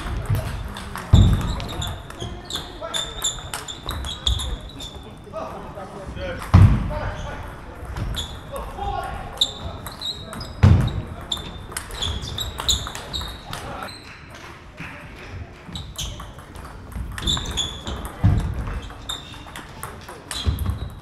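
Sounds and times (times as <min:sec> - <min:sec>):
table tennis ball hitting bats: 0:00.0 - 0:04.6, 0:06.4 - 0:21.0.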